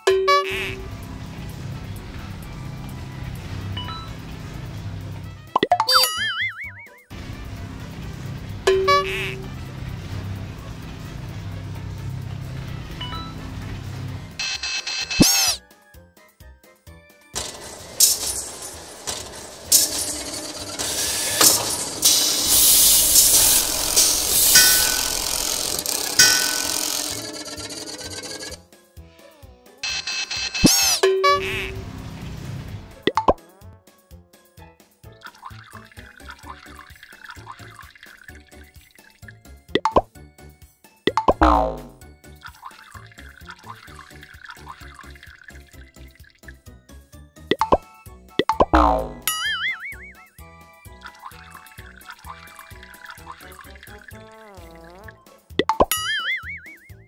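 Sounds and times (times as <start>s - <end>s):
children's background music: 0.0s - 57.0s
cartoon swooping glides: 15.1s - 15.6s
hiss of spraying foam: 19.7s - 25.6s.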